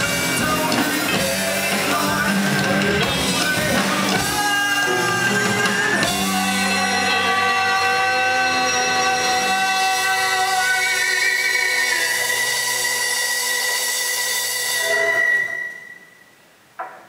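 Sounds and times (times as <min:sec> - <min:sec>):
rock band holding a chord: 0:00.0 - 0:15.1.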